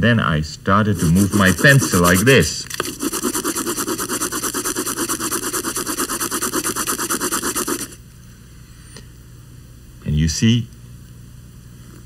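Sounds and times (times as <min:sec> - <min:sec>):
fast paper rubbing strokes: 0:00.9 - 0:08.0.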